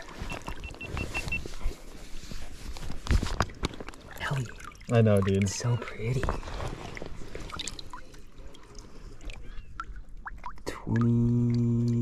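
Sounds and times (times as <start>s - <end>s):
water sloshing and splashing: 0.0s - 11.5s.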